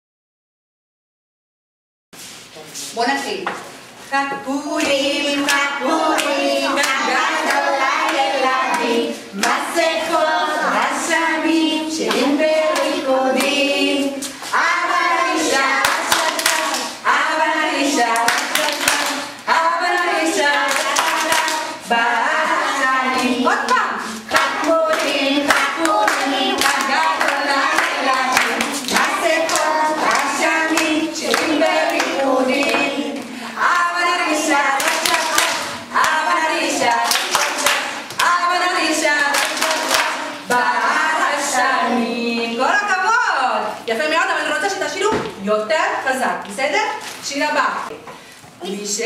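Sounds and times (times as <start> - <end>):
woman singing children's song: 4.1 - 45.3
hands clapping in rhythm: 5.4 - 9.7, 12.0 - 13.6, 15.5 - 17.2, 18.0 - 21.8, 23.2 - 38.5, 39.1 - 40.7.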